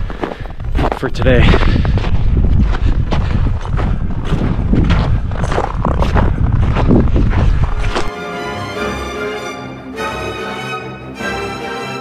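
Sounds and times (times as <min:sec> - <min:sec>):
wind buffeting microphone: 0:00.0 - 0:08.1
footsteps crunching on snow: 0:00.0 - 0:08.2.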